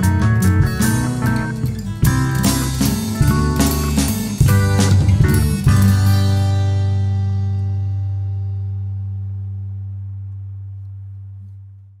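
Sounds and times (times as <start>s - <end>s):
acoustic guitar chord ringing: 0.0s - 11.5s.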